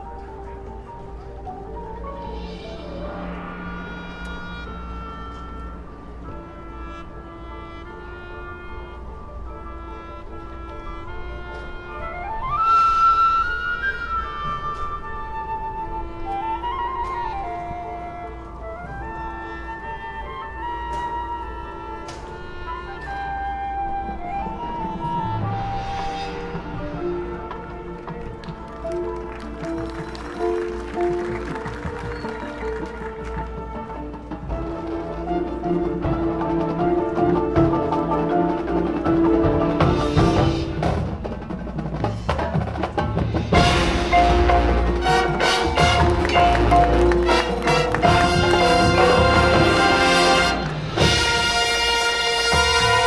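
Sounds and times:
marching band playing slow music: 0.0s - 53.0s.

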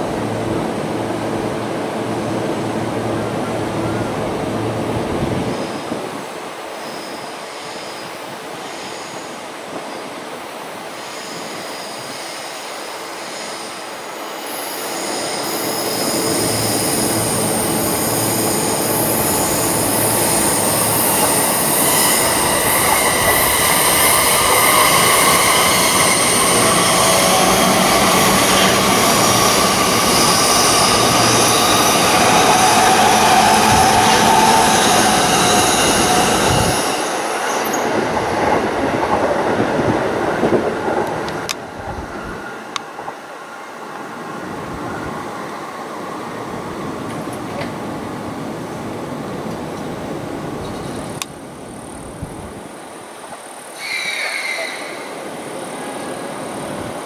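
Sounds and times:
electric train passing: 0.0s - 57.0s.

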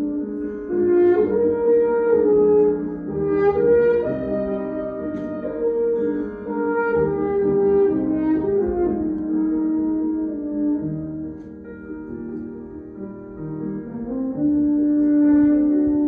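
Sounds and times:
french horn melody: 0.0s - 16.0s
grand piano accompaniment: 0.0s - 16.0s.

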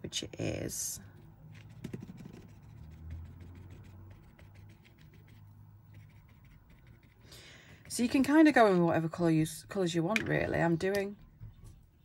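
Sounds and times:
faint low hum: 0.0s - 12.0s
paintbrush scratching on linen: 1.5s - 8.3s.

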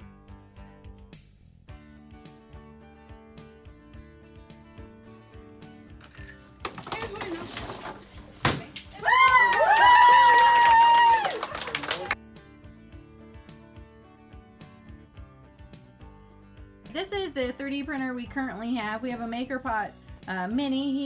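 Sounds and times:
children shrieking and cheering: 9.0s - 11.6s.

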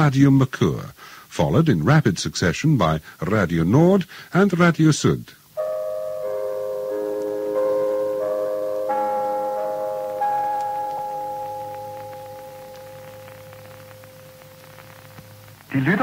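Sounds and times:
bell-like chime notes: 5.6s - 15.1s.

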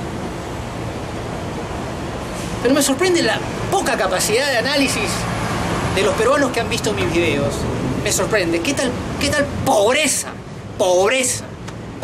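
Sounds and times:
low city rumble: 0.0s - 12.0s.

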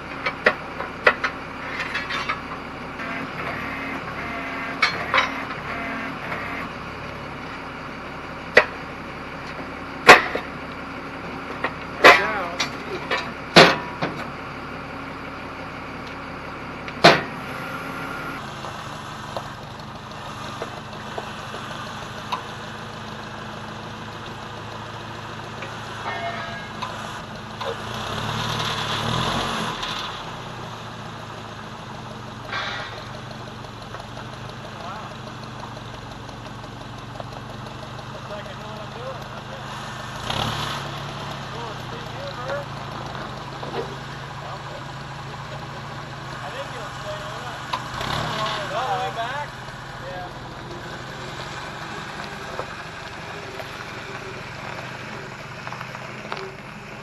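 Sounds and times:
engine idling: 0.0s - 57.0s
steel bar striking metal wheel rim: 26.0s - 27.0s.

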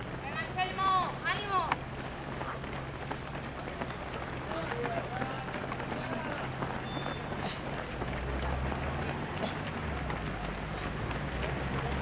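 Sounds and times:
running shoes slapping on asphalt: 0.0s - 12.0s
faint voices: 0.1s - 12.0s.

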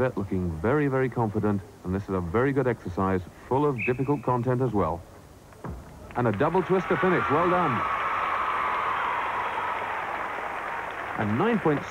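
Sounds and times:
faint high steady tone: 0.0s - 5.0s
audience applauding: 6.1s - 11.9s.

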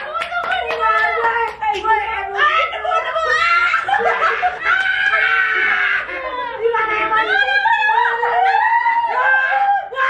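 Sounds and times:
group laughing loudly: 2.8s - 6.4s.

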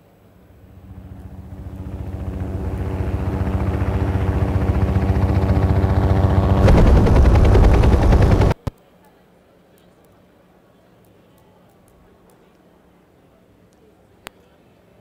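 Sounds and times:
steady hum: 0.0s - 8.7s
rhythmic low thudding: 1.8s - 8.6s.

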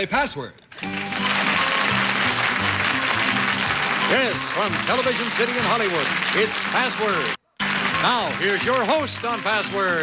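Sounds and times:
audience applauding: 0.8s - 10.0s
game show theme music: 0.8s - 10.0s.

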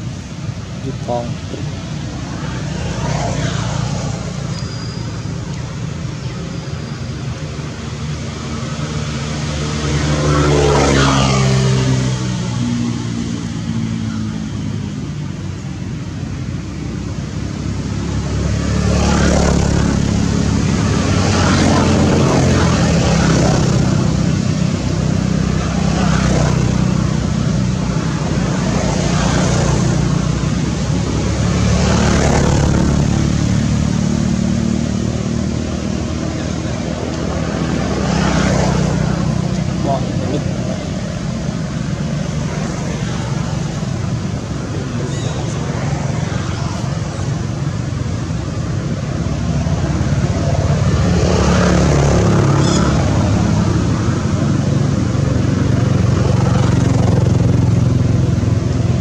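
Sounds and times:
low engine hum: 0.0s - 59.0s
vehicles passing: 0.0s - 59.0s.

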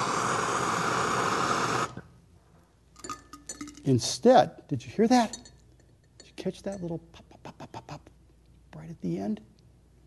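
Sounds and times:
gas torch flame hissing: 0.0s - 2.1s.

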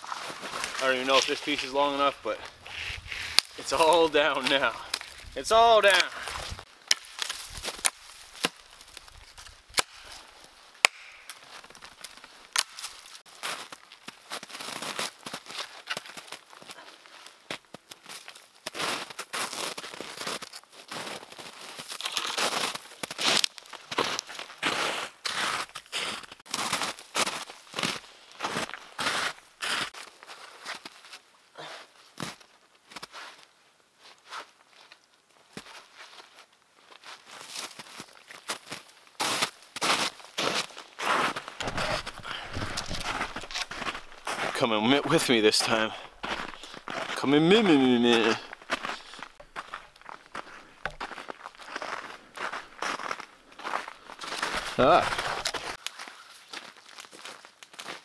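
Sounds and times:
footsteps crunching in snow: 0.0s - 10.6s, 11.4s - 31.2s, 34.1s - 58.0s
twigs cracking underfoot: 0.0s - 16.7s, 21.8s - 24.6s, 39.6s - 58.0s.

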